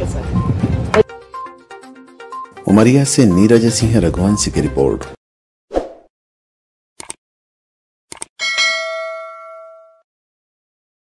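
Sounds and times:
bright bell ding: 0:08.4 - 0:10.1.

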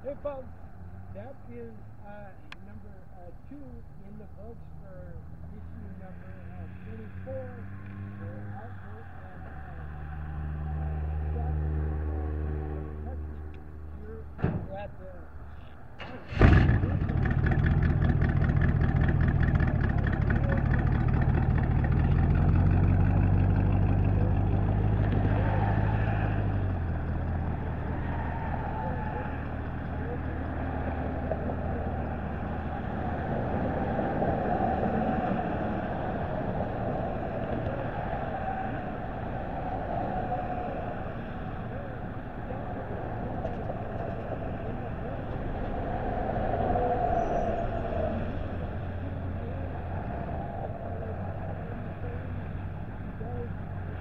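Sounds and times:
car engine starting and running: 0:00.0 - 0:54.0.

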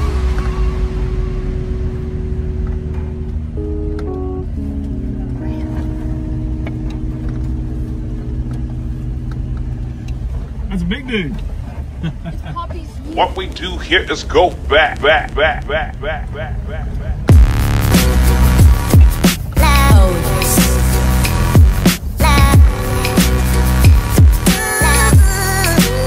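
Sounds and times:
music of held chords: 0:00.0 - 0:11.5, 0:17.2 - 0:26.0
vehicle cabin rumble: 0:00.0 - 0:26.0
person speaking: 0:12.5 - 0:17.4.

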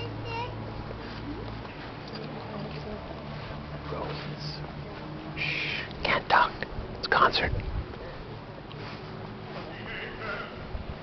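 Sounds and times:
person whispering: 0:05.4 - 0:07.6.

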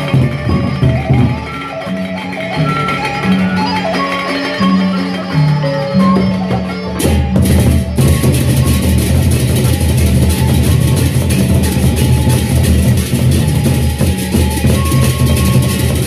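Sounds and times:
cymbal clashing: 0:00.0 - 0:16.0
barrel drums beaten with sticks: 0:06.1 - 0:16.0.

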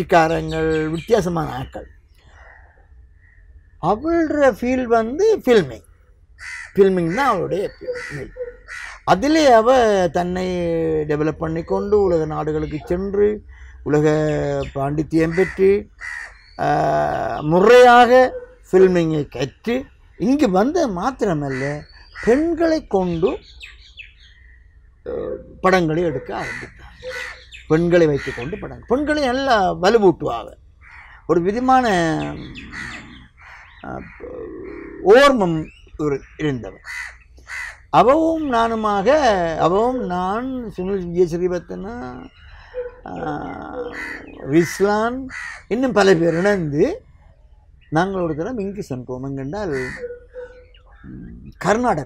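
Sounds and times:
man's voice: 0:00.0 - 0:01.8, 0:09.1 - 0:15.8, 0:25.1 - 0:27.0, 0:31.4 - 0:32.9, 0:43.1 - 0:47.0, 0:48.0 - 0:50.0
man speaking: 0:00.0 - 0:01.9, 0:03.8 - 0:05.9, 0:06.8 - 0:08.3, 0:09.1 - 0:15.9, 0:16.6 - 0:23.4, 0:25.1 - 0:30.6, 0:31.3 - 0:33.2, 0:33.8 - 0:36.8, 0:38.0 - 0:42.3, 0:43.0 - 0:47.0, 0:47.9 - 0:50.1, 0:51.1 - 0:52.0
songbird chirping: 0:00.0 - 0:52.0.

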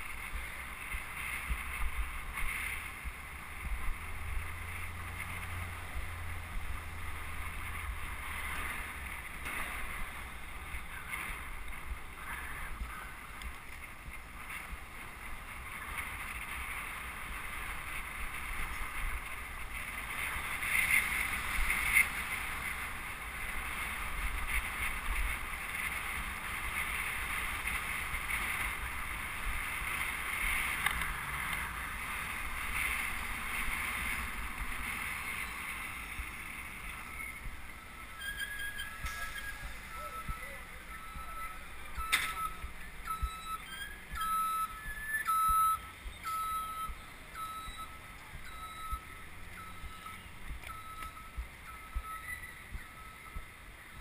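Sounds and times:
wind rushing over microphone: 0:00.0 - 0:46.3
road and traffic rumble: 0:00.0 - 0:54.0.

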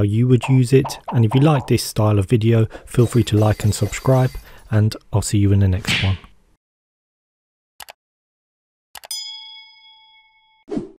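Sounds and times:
bell ding: 0:09.1 - 0:10.6.

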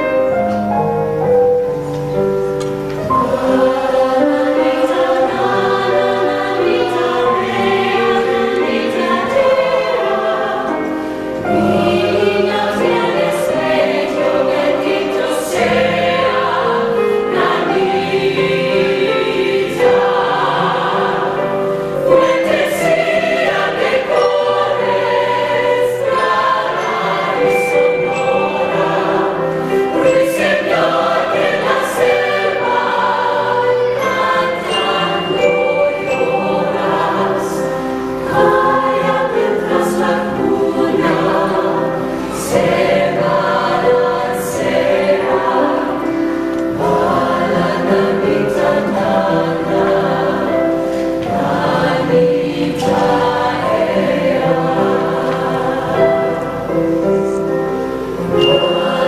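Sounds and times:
mixed choir singing in harmony: 0:00.0 - 0:59.0
piano accompaniment: 0:00.0 - 0:59.0.

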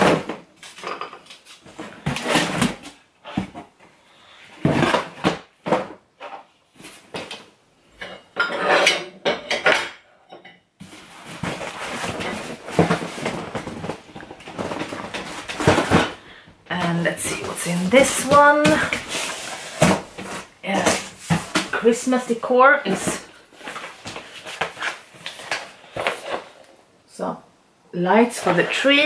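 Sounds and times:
rustling and rummaging: 0:00.0 - 0:09.9, 0:10.8 - 0:26.9, 0:28.2 - 0:29.0.

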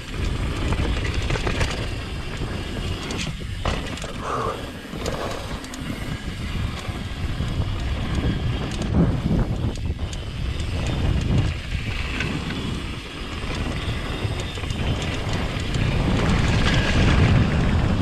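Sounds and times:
bike rattling: 0:00.0 - 0:18.0
tyres rumbling on dirt: 0:00.0 - 0:18.0
wind buffeting microphone: 0:00.0 - 0:18.0.

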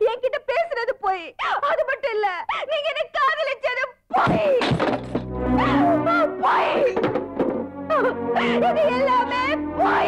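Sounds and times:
background music: 0:04.6 - 0:10.0.

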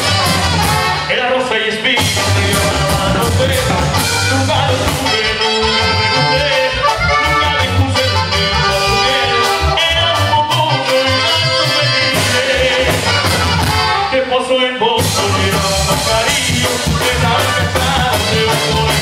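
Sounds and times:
drum kit: 0:00.0 - 0:01.1, 0:02.0 - 0:14.1, 0:15.0 - 0:19.0
saxophones: 0:00.0 - 0:01.3, 0:02.0 - 0:14.4
accordion: 0:00.0 - 0:19.0
person singing: 0:01.0 - 0:19.0.

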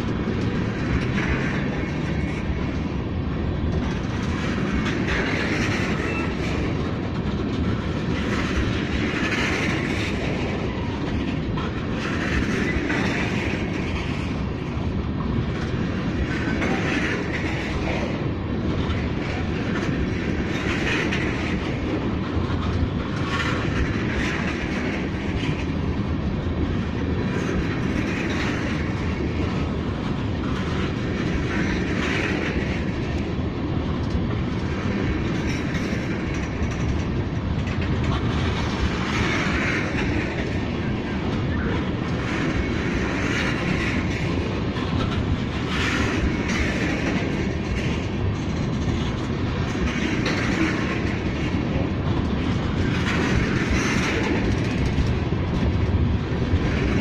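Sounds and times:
train wheels clacking over rail joints: 0:00.0 - 0:57.0.

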